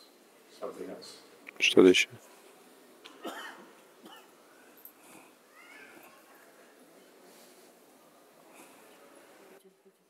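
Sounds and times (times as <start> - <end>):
faint hall ambience: 0.0 - 10.0
faint cough: 3.1 - 4.4.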